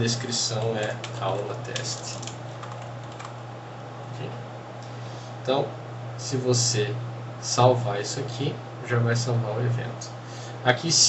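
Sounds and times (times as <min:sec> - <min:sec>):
steady low hum: 0:00.0 - 0:11.0
computer keyboard typing: 0:00.5 - 0:03.4.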